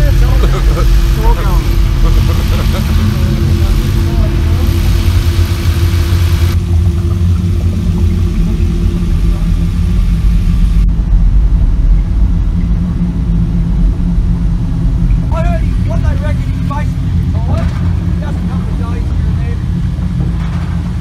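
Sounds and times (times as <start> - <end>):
ferry engine low rumble: 0.0 - 21.0.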